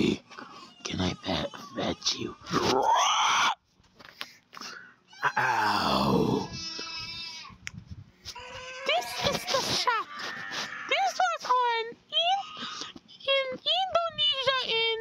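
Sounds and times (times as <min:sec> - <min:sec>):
low growl: 0:05.3 - 0:06.6.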